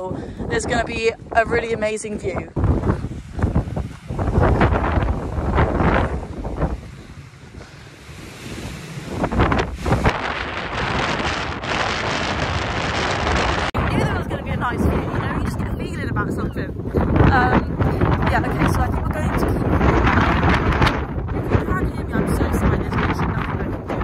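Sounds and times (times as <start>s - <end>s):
wind buffeting microphone: 0.0s - 24.0s.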